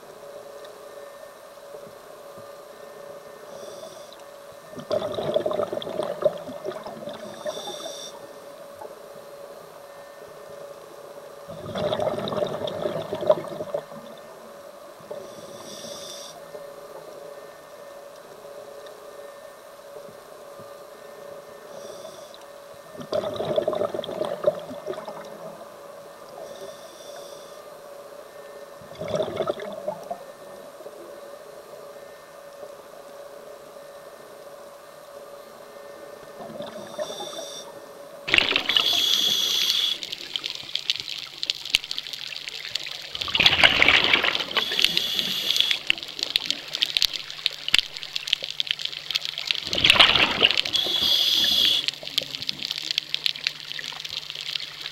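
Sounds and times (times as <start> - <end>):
gurgling exhaled bubbles: 4.8 - 7.8, 11.5 - 14.2, 23.0 - 25.6, 28.9 - 30.2, 38.3 - 54.9
regulator inhalation hiss: 15.3 - 16.4, 38.4 - 40.8, 44.2 - 46.9, 50.5 - 52.2.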